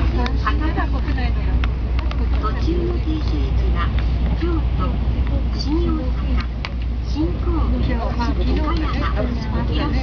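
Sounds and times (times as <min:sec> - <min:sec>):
train low rumble: 0:00.0 - 0:10.0
voices talking: 0:00.0 - 0:10.0.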